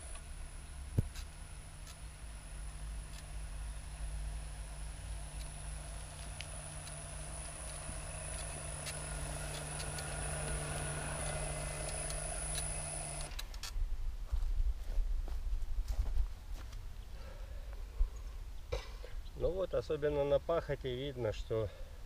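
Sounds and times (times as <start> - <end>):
electric cultivator motor whining: 0.0 - 13.6
scattered clicks: 5.3 - 13.8.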